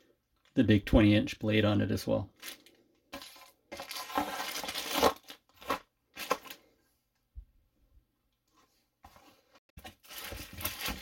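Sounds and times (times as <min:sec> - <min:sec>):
plastic packaging crinkling: 0:02.4 - 0:06.6, 0:09.8 - 0:11.0.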